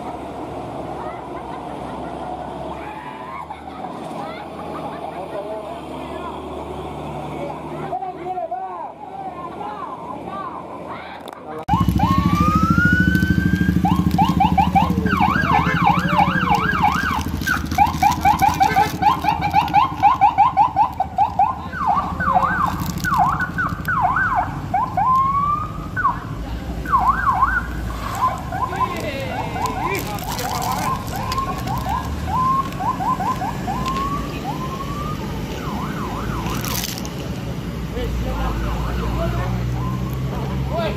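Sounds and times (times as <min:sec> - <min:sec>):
vehicle engines running: 0:00.0 - 0:40.9
police siren wailing and yelping: 0:11.7 - 0:37.0, 0:38.5 - 0:40.3.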